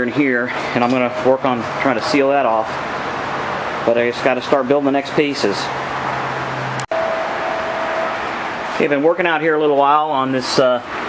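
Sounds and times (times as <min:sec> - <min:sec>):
higher-pitched hum: 0:05.4 - 0:09.8.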